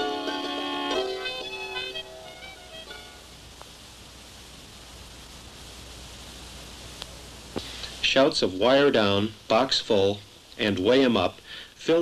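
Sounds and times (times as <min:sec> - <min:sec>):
plucked string notes: 0:00.0 - 0:03.2
tape hiss: 0:00.0 - 0:12.0.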